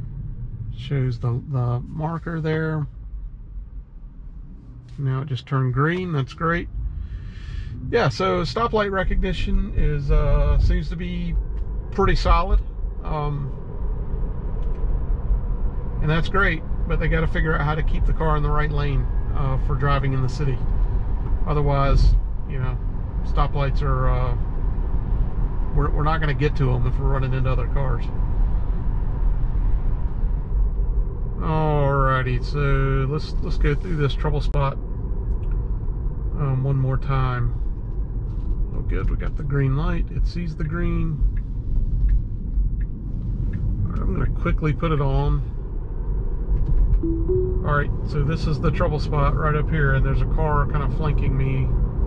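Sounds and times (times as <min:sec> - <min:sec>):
road and cabin rumble: 0:00.0 - 0:52.0.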